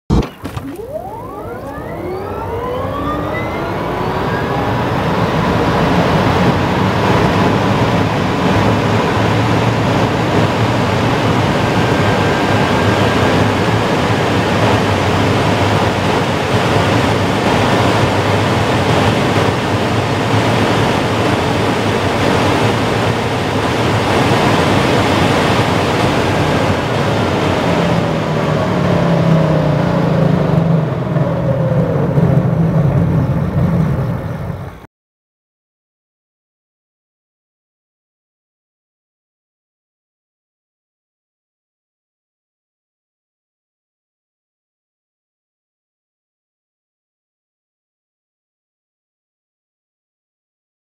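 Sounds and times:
deep rumble: 0.1s - 34.9s
wind and tyre noise: 0.1s - 34.9s
electric motor whine: 0.2s - 7.0s.

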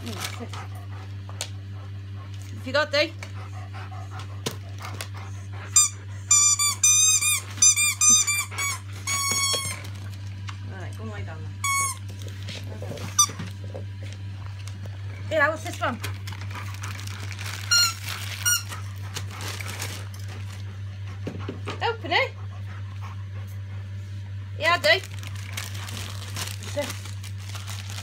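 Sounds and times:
wrapping paper rustling: 0.0s - 0.5s, 16.1s - 20.7s, 25.0s - 28.0s
steady low hum: 0.0s - 28.0s
squeaky dog toy squeak: 5.8s - 9.8s, 11.6s - 12.0s.

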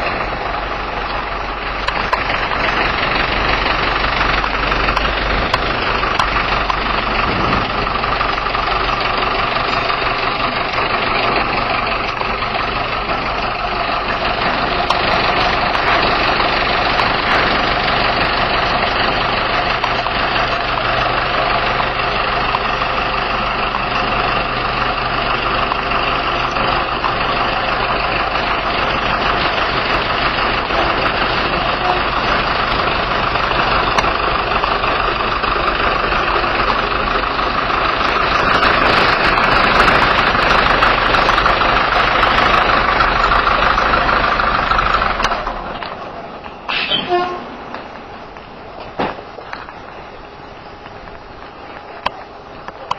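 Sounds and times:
truck diesel engine idling: 0.0s - 52.9s.

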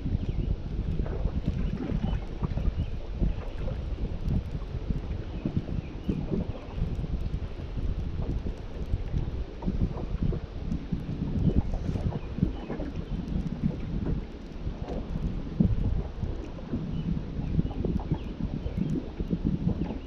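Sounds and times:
choppy water splashing: 0.0s - 20.0s
wind buffeting microphone: 0.0s - 20.0s.

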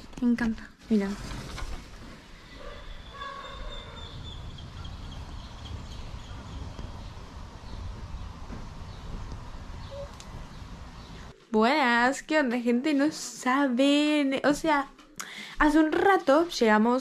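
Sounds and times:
steady low rumble: 4.0s - 11.4s.

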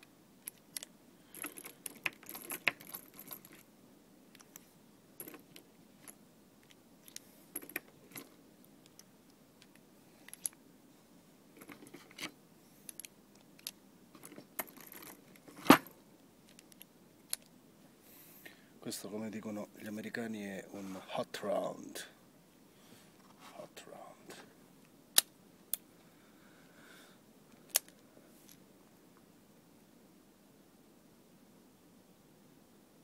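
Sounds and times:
metal cartridges clicking and jingling: 0.4s - 3.7s, 4.3s - 10.6s, 11.6s - 17.5s, 27.6s - 28.6s.

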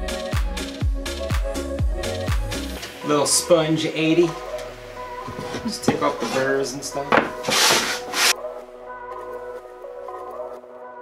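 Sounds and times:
background music: 0.0s - 11.0s
sanding sponge rubbing wood: 5.3s - 6.6s, 7.2s - 8.4s.

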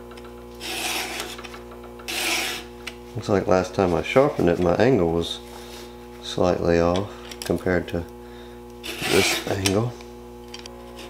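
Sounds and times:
file rasping on chainsaw chain: 0.6s - 1.3s, 2.1s - 2.7s, 8.8s - 9.6s.

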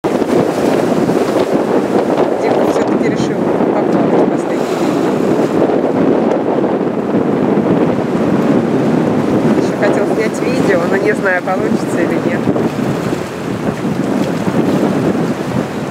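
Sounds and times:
choppy sea water wash: 0.0s - 15.9s
wind buffeting microphone: 0.0s - 15.9s.

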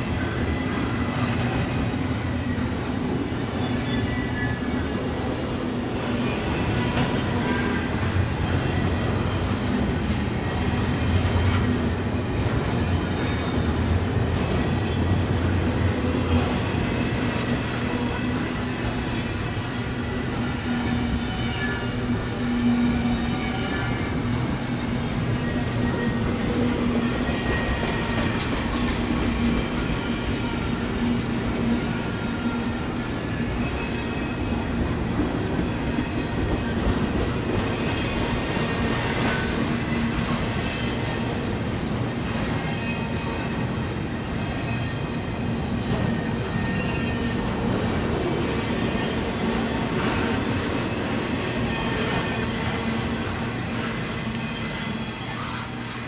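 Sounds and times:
train wheels clattering on rails: 0.0s - 56.0s.

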